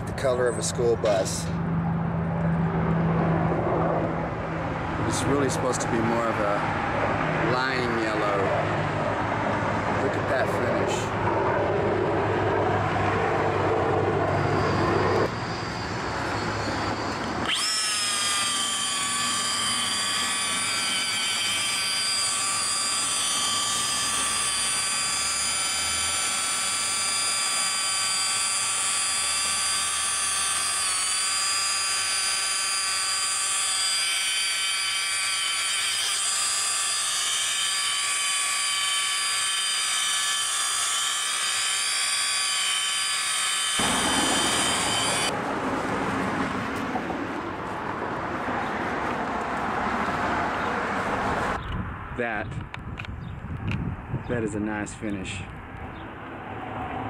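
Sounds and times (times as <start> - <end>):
electric polisher whining: 13.4 - 45.4.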